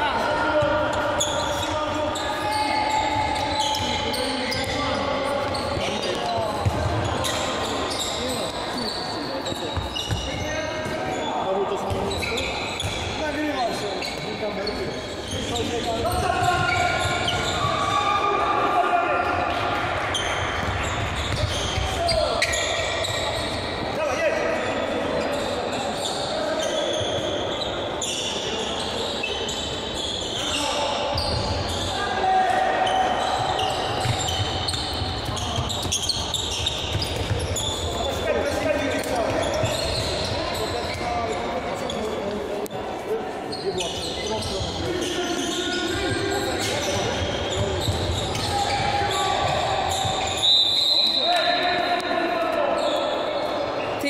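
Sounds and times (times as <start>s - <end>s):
sneakers squeaking on court: 0.6s - 18.0s, 19.5s - 24.0s, 25.1s - 32.0s, 32.8s - 42.5s, 43.4s - 51.8s.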